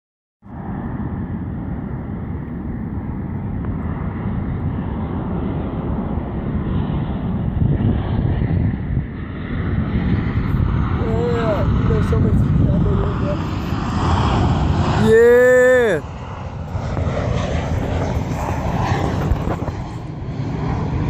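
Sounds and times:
jet airliner engine rumble: 0:00.4 - 0:21.0
wind on microphone: 0:00.5 - 0:21.0.

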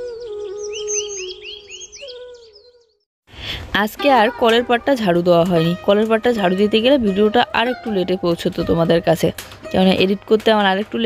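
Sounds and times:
birds chirping: 0:00.0 - 0:03.0
woman speaking: 0:03.6 - 0:11.0.

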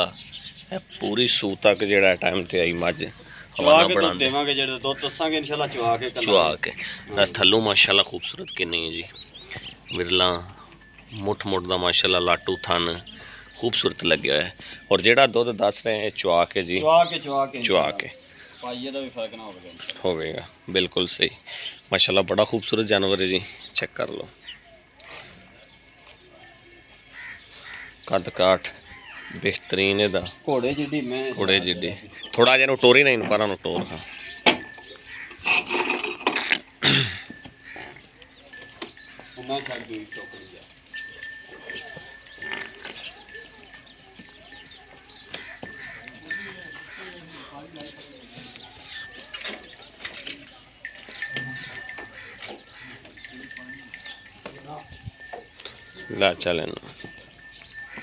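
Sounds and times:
farm animal calling: 0:00.0 - 0:20.6, 0:21.5 - 0:58.0
man speaking: 0:00.8 - 0:09.1.

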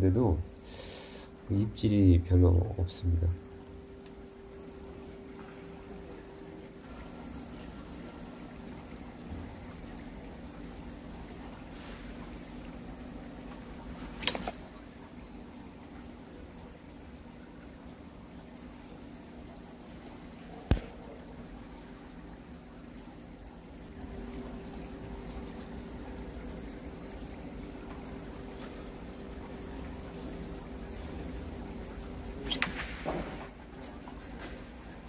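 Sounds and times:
second steady hum: 0:00.0 - 0:32.6
water trickling: 0:00.0 - 0:35.0
sharp click: 0:20.7 - 0:21.0, 0:32.5 - 0:32.8.

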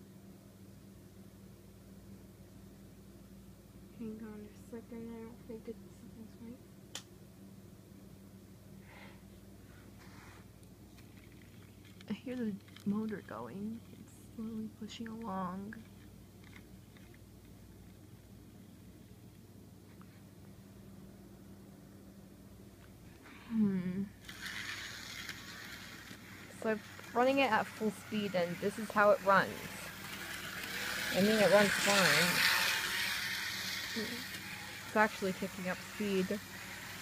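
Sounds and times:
short breaths: 0:08.8 - 0:09.3
small electric motor humming: 0:23.5 - 0:37.0
person speaking: 0:26.5 - 0:32.9.

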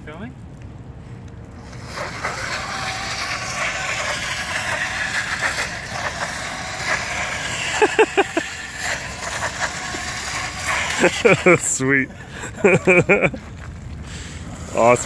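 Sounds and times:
tire scrubbing on ice: 0:01.5 - 0:15.0
electric motor whining: 0:01.6 - 0:11.8.

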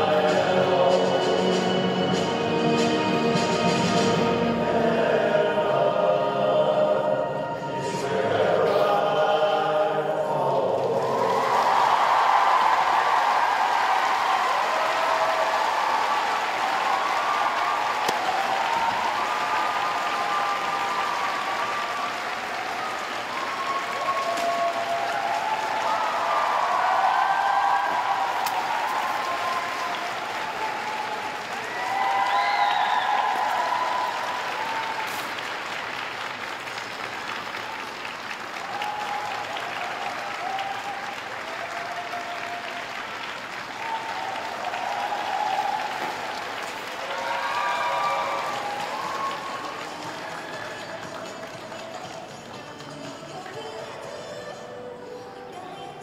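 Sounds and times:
crowd applauding: 0:10.6 - 0:54.6.

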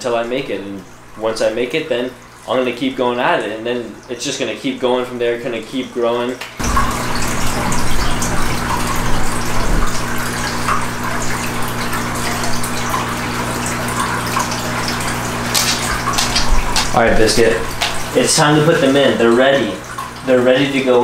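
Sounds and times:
water running: 0:00.0 - 0:21.0.

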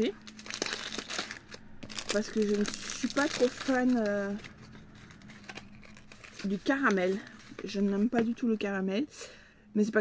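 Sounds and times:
plastic wrapper crinkling: 0:00.0 - 0:08.6.

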